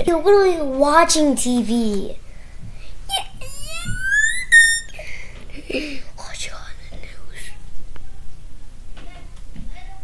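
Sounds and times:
child squealing: 3.1 - 5.0.

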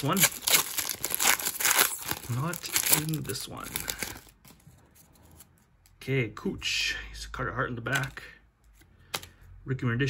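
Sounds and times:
foil wrapper rustling: 0.0 - 4.6
cards clicking and ticking: 7.9 - 9.4.

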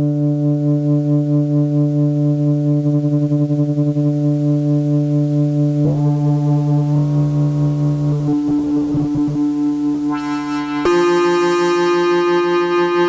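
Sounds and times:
synthesizer sustained low note: 0.0 - 13.0.

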